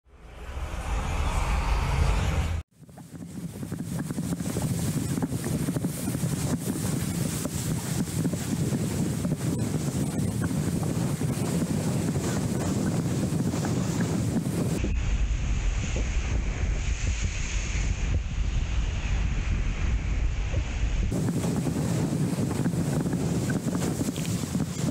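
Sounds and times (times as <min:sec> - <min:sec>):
wind buffeting microphone: 0:01.4 - 0:24.9
choppy water slapping board: 0:02.9 - 0:14.8, 0:21.1 - 0:24.9.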